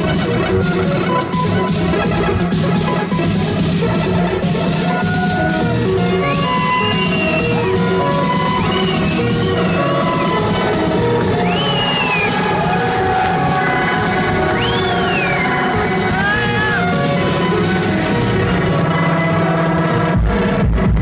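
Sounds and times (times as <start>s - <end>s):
gliding synth lead: 0.0s - 20.2s
bass and beat: 0.0s - 21.0s.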